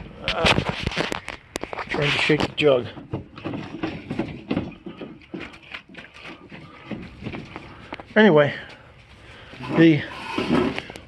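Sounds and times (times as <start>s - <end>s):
jug knocking and rattling on metal table: 2.4s - 7.7s.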